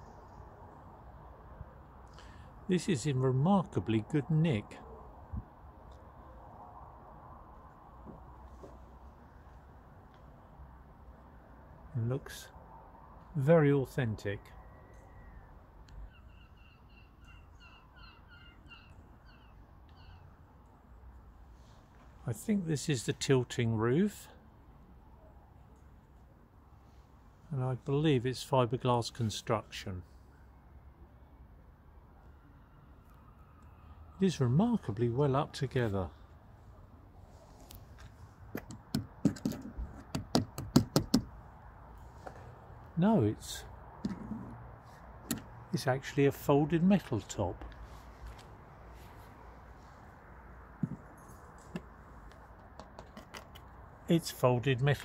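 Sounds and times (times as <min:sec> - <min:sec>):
bird calling: 0:14.8 - 0:20.4
knuckles rapping on panels: 0:38.6 - 0:41.3.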